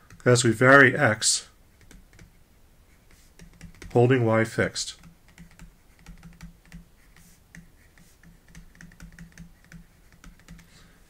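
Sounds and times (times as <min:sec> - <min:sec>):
stylus tapping on tablet: 0:01.8 - 0:02.4, 0:03.1 - 0:04.0, 0:05.0 - 0:10.7.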